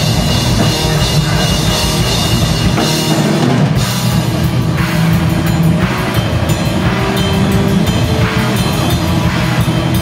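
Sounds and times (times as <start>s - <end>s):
drum kit with cymbal hits: 0.0s - 10.0s
loud electric guitars: 0.0s - 10.0s.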